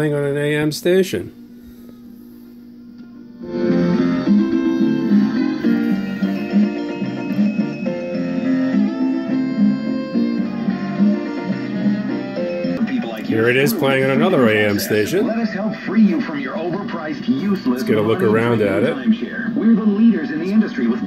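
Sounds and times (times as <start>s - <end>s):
music from old radio speaker: 1.9s - 21.0s.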